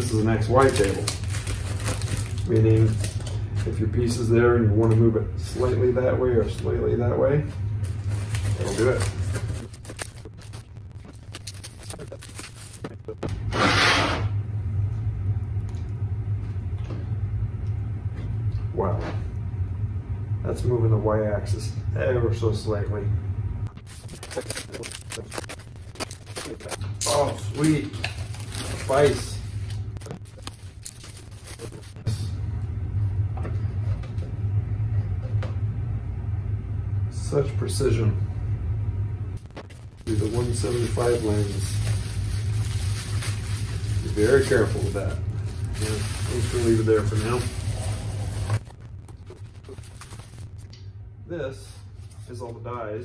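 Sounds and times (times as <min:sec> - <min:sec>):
packaging rustling and crinkling: 0:00.0 - 0:03.7, 0:07.8 - 0:13.2, 0:23.8 - 0:32.0, 0:39.6 - 0:50.8
steady low hum: 0:00.0 - 0:53.0
low rumble: 0:24.8 - 0:52.0.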